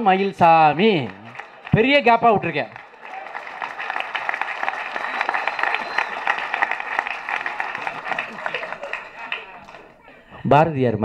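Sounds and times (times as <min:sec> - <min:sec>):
crowd applauding: 0:00.0 - 0:10.3.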